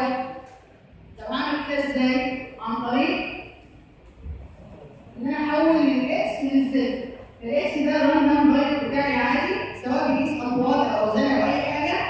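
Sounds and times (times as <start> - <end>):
woman speaking into microphone: 0.0 - 0.5, 1.2 - 3.6, 5.2 - 12.0.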